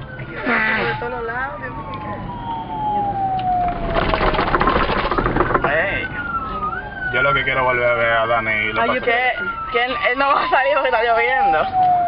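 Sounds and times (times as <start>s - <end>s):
siren wailing: 0.0s - 12.0s
rapid rattling noise: 3.7s - 6.5s.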